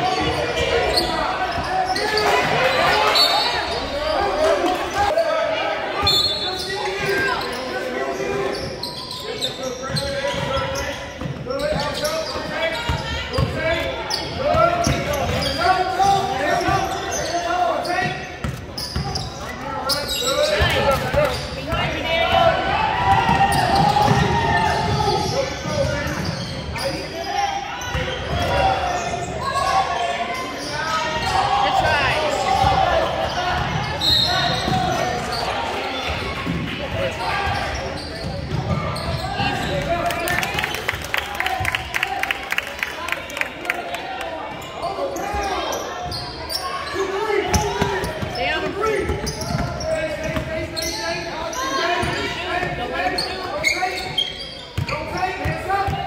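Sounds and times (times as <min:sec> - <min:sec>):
voices calling and talking: 0:00.0 - 0:56.0
basketball bouncing on court: 0:23.0 - 0:25.0, 0:36.1 - 0:39.8, 0:49.0 - 0:50.5.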